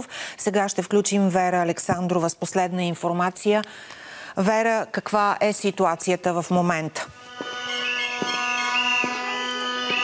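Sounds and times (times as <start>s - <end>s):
high whistle-like tones: 7.1s - 10.0s
horn-like drone: 7.1s - 10.0s.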